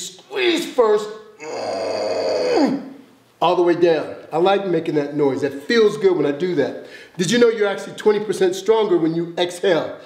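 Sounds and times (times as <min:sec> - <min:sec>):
man groaning: 0:01.4 - 0:03.0.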